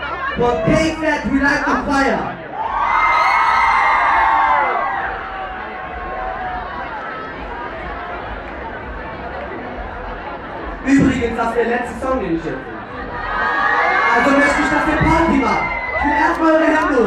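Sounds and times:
audience cheering and shouting: 0:00.0 - 0:09.0, 0:12.3 - 0:17.0
murmur of crowd chatter: 0:00.0 - 0:17.0.

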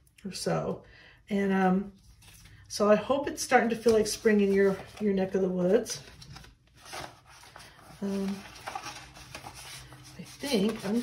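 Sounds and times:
paper rustling: 0:03.5 - 0:11.0.

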